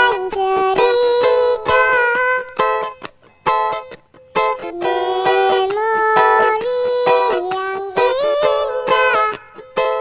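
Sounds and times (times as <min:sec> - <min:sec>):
high pitch-altered singing voice: 0:00.0 - 0:02.6, 0:04.7 - 0:09.6
strummed ukulele: 0:00.0 - 0:10.0.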